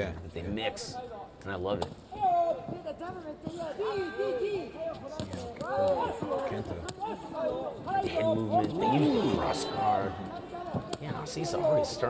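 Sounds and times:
men shouting: 7.0s - 10.7s.

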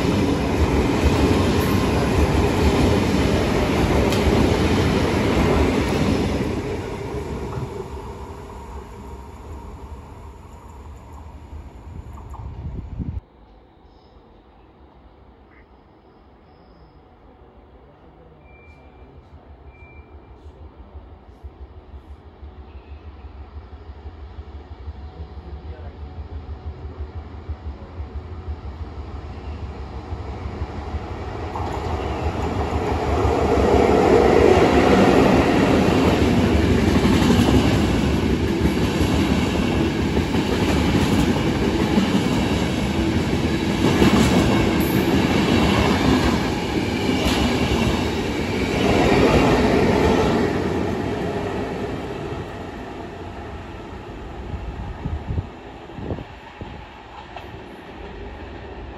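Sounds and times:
train passing at speed: 0.0s - 58.9s.

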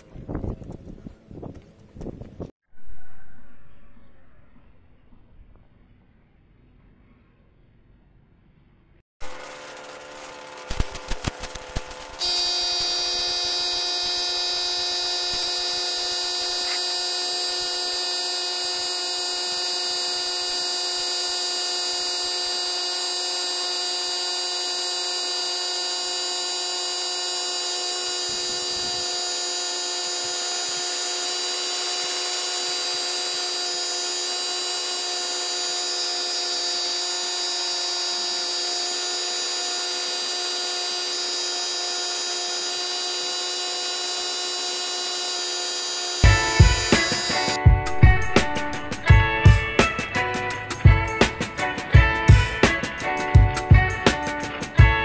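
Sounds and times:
spray gun whining hiss: 9.2s - 47.6s
spray gun clicks: 9.4s - 15.9s.

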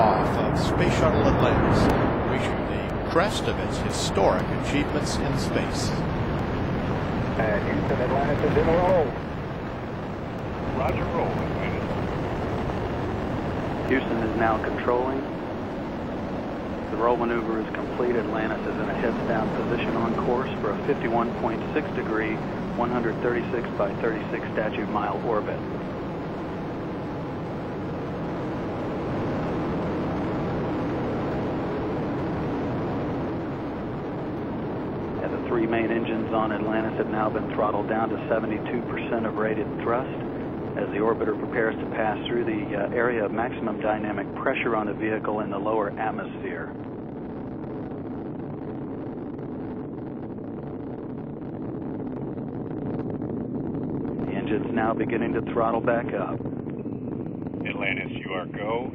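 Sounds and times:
rocket engines roaring: 0.0s - 58.9s.

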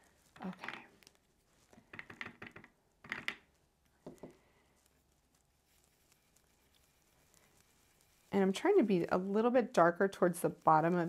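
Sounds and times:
soft taps and scrapes: 0.1s - 9.5s.

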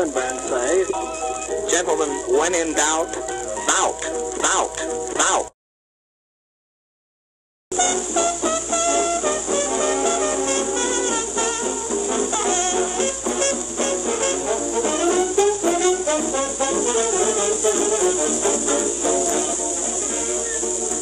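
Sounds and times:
jazz band playing: 0.0s - 5.1s, 7.7s - 21.0s
record hiss: 0.0s - 5.5s, 7.7s - 21.0s.

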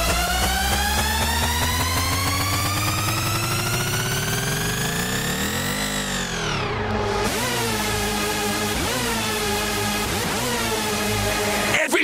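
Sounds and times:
low bass rumble: 0.0s - 11.8s
pitched synth riser: 0.0s - 11.9s.

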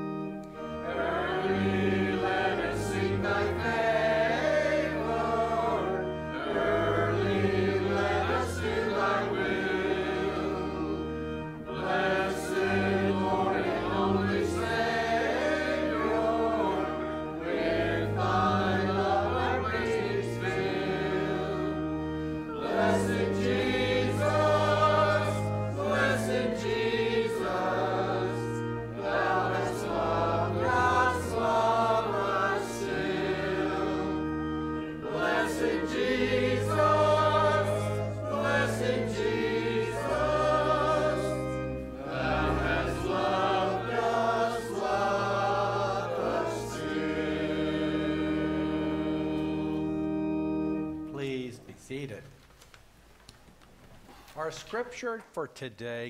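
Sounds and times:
church choir singing: 0.0s - 51.6s
organ low sustained notes: 0.0s - 52.3s.

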